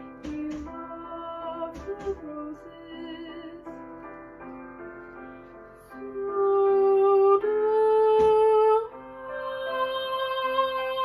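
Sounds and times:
young woman singing: 0:00.0 - 0:03.9, 0:05.9 - 0:11.0.

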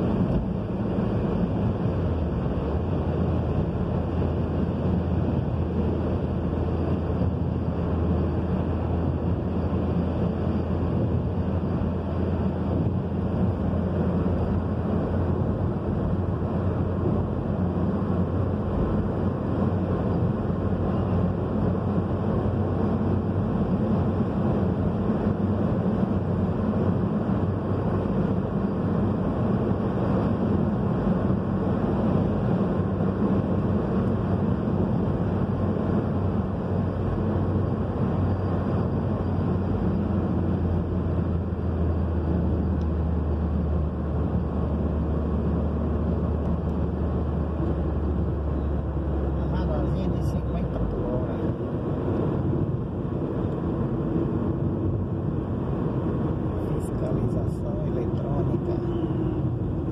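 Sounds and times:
car engine and tyre rumble: 0:00.0 - 0:59.9.

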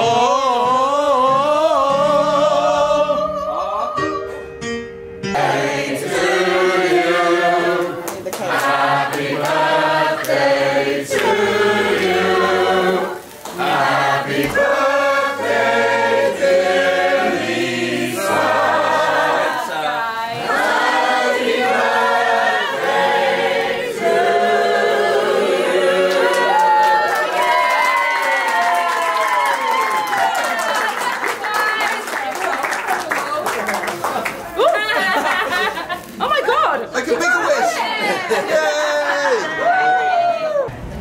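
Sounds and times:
group singing unaccompanied: 0:00.0 - 0:04.1, 0:05.2 - 0:27.6.

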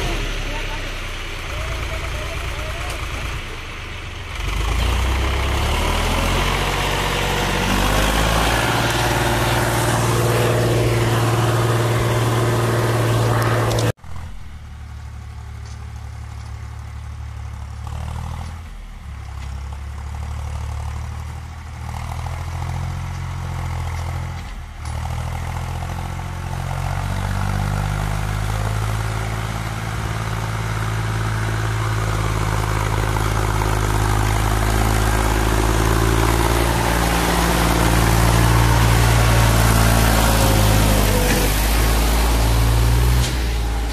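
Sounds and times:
tractor diesel engine under load: 0:00.0 - 0:43.9.

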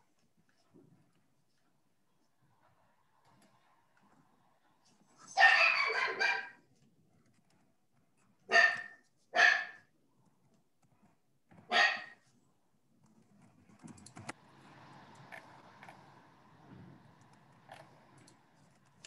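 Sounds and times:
dog barking: 0:05.3 - 0:06.6, 0:08.5 - 0:09.9, 0:11.6 - 0:12.3.

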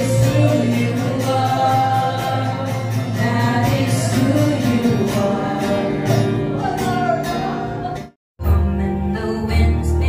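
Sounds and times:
women singing through pa: 0:00.0 - 0:08.1
acoustic guitar: 0:00.0 - 0:10.0.

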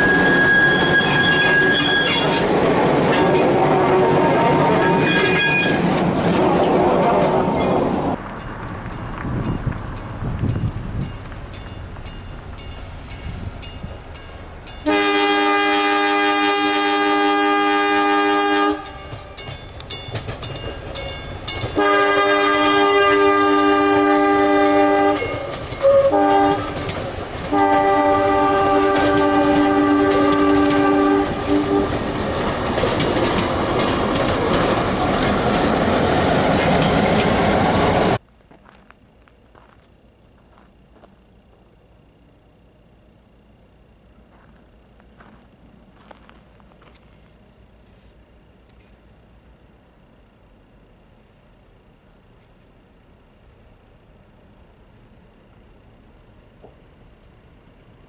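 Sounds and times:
locomotive air horn: 0:00.0 - 0:02.4, 0:03.2 - 0:05.8, 0:14.8 - 0:19.4, 0:21.8 - 0:32.0
train cars rumbling past: 0:00.0 - 0:52.3.

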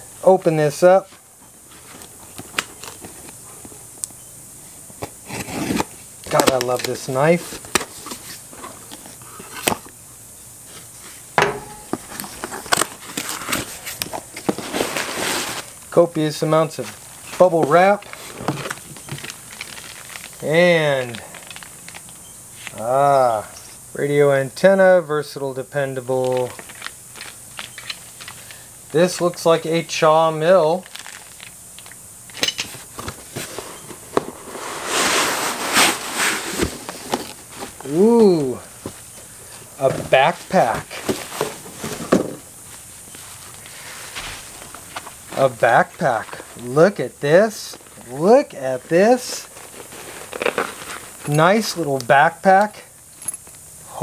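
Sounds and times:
cardboard scraping: 0:05.0 - 0:09.7, 0:10.7 - 0:15.7, 0:32.9 - 0:42.4, 0:43.2 - 0:45.6, 0:49.3 - 0:51.4
cardboard rustling: 0:10.7 - 0:15.8, 0:16.7 - 0:22.0, 0:32.7 - 0:51.8
plastic wrap crinkling: 0:16.8 - 0:22.8, 0:26.2 - 0:29.4, 0:30.5 - 0:32.0, 0:47.6 - 0:51.8
cardboard box rustling: 0:32.9 - 0:42.4, 0:49.4 - 0:51.3.

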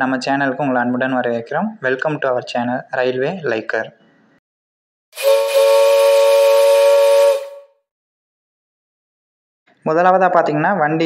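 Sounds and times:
train horn blast: 0:05.2 - 0:07.8.

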